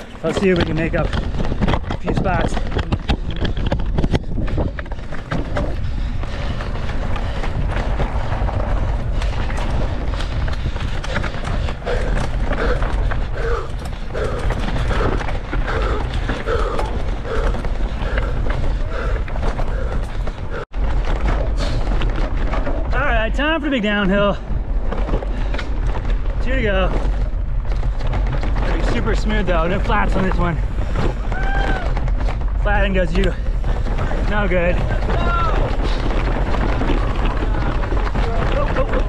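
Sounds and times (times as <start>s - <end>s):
bike rattles and knocks: 0.0s - 39.0s
wind rumble on microphone: 0.0s - 39.0s.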